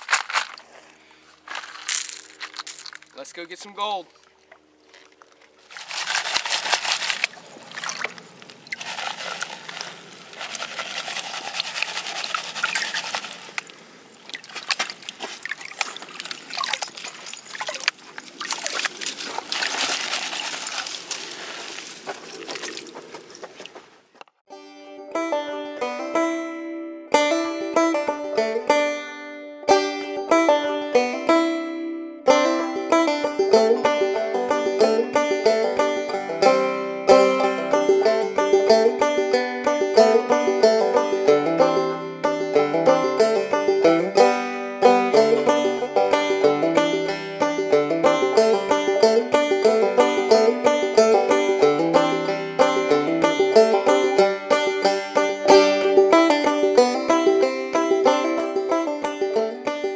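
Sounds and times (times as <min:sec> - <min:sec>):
water and gravel sloshing in pan: 0:04.3 - 0:23.8
plucked string music: 0:24.5 - 0:59.9.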